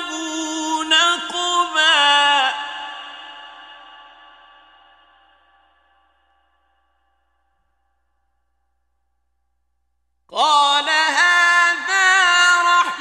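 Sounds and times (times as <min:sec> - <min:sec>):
man's reciting voice held note: 0:00.0 - 0:03.3.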